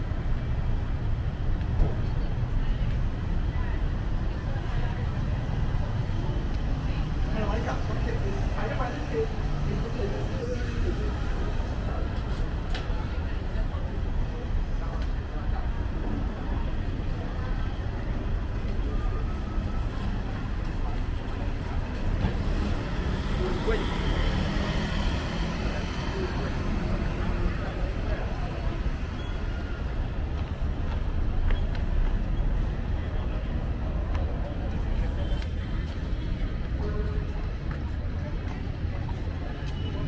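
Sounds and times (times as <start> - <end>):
passers-by talking: 0.0 - 40.0
traffic rumble: 0.0 - 40.0.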